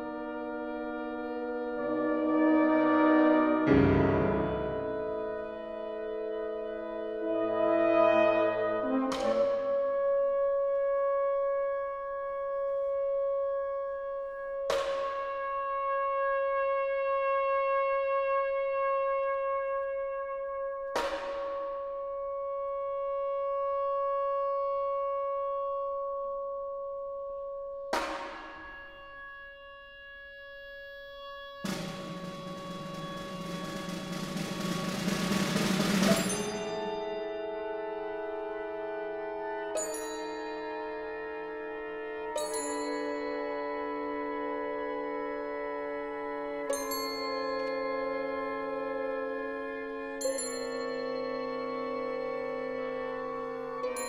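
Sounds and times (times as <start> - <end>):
chamber ensemble music: 0.0 - 16.0, 31.6 - 54.0.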